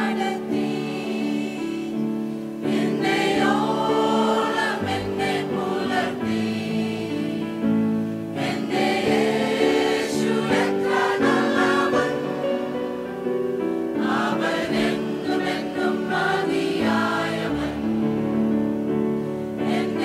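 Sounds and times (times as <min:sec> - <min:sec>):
mixed choir singing a hymn: 0:00.0 - 0:20.0.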